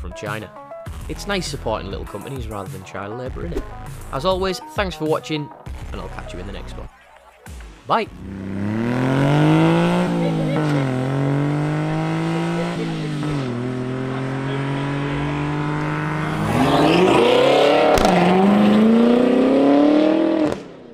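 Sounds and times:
truck engine accelerating: 0:07.5 - 0:20.9.

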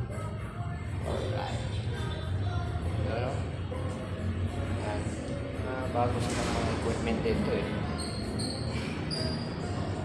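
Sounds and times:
voices in background: 0:00.1 - 0:10.0
brief high squeak: 0:07.9 - 0:09.8.

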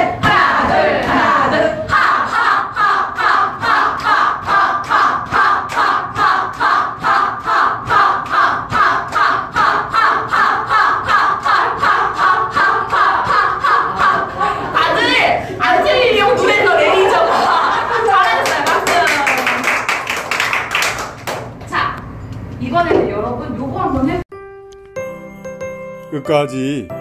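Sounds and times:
women chanting ha cries: 0:00.0 - 0:19.3.

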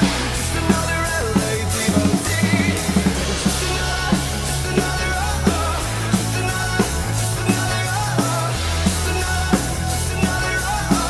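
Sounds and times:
acoustic drum kit playing: 0:00.0 - 0:11.0
rock backing track: 0:00.0 - 0:11.0.

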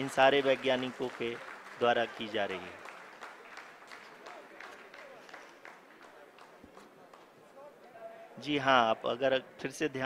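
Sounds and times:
scattered clapping: 0:00.0 - 0:07.4.

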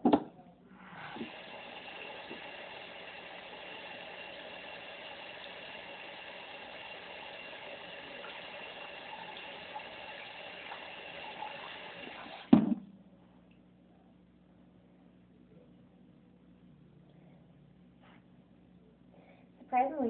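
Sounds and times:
tap water running: 0:00.8 - 0:12.7.

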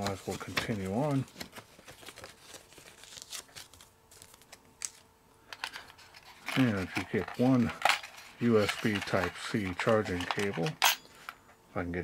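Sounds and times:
paper rustling and crinkling: 0:00.0 - 0:05.1, 0:05.7 - 0:10.7.

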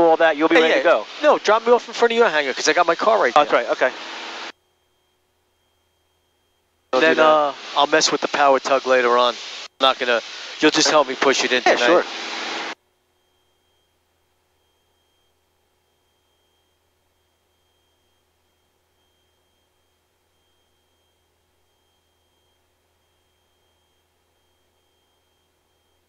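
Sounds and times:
faint steady hum: 0:00.0 - 0:26.0
loud cabin noise hiss: 0:00.4 - 0:04.5, 0:07.0 - 0:12.8.

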